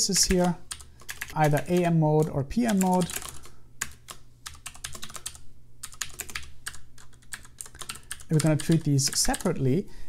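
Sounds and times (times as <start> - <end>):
computer keyboard typing: 0.0 - 9.6.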